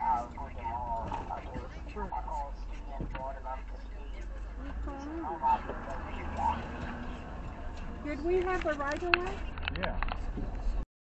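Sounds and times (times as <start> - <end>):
people talking: 0.0 - 7.2, 8.0 - 10.1
car rumbling: 0.0 - 10.8.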